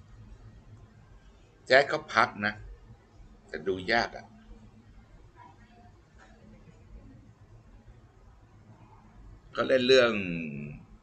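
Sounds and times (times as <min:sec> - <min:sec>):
man's voice: 0:01.7 - 0:02.6, 0:03.6 - 0:04.2, 0:09.6 - 0:10.8.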